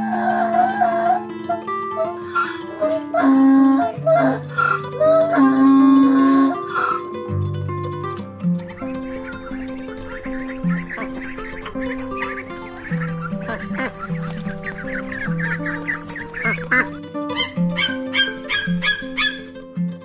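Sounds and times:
background music held notes: 0:00.0 - 0:20.0
ducklings peeping: 0:08.7 - 0:19.5.

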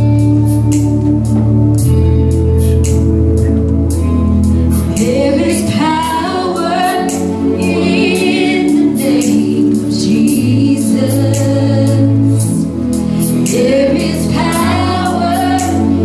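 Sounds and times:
band accompaniment: 0:00.0 - 0:06.4
women singing worship song: 0:04.9 - 0:16.0.

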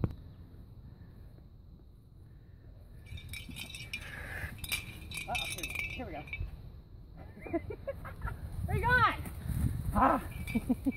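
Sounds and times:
metallic jingling and clinking: 0:03.0 - 0:06.7, 0:10.2 - 0:10.9.

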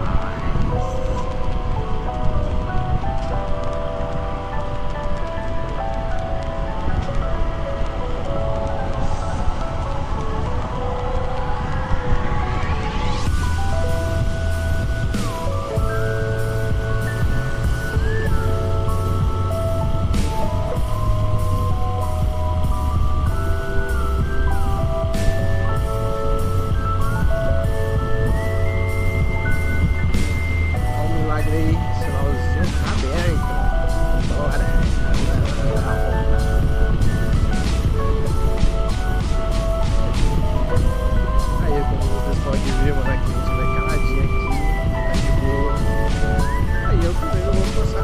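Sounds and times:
background music with heavy bass: 0:00.0 - 0:48.0
wind and road noise: 0:00.0 - 0:48.0.

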